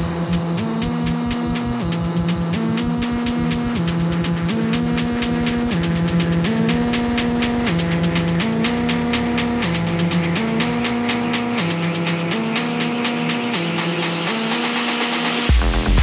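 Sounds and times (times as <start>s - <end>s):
deep bass: 0.0s - 14.4s, 15.5s - 16.0s
hiss: 0.0s - 15.5s
hi-hats: 0.0s - 16.0s
synth riff: 0.0s - 16.0s.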